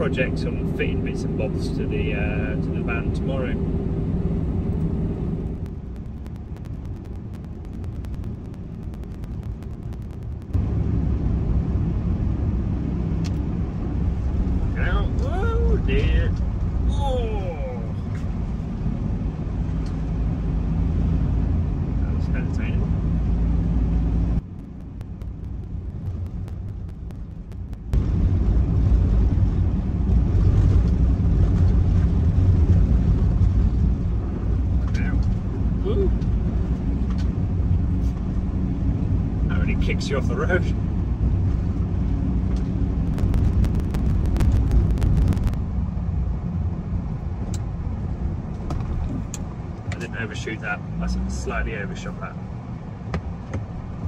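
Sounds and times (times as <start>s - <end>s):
van engine and tyres rumbling: 0.0s - 54.0s.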